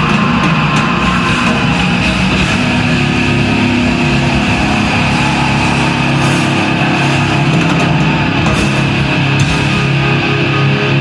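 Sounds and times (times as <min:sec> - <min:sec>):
drum hits: 0:00.0 - 0:10.3
bass guitar: 0:00.0 - 0:11.0
distorted electric guitar: 0:00.0 - 0:11.0.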